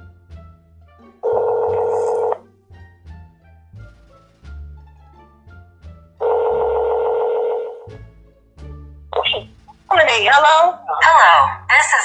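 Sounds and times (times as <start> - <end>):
telephone ringing tone: 1.2 - 2.4, 6.2 - 7.9.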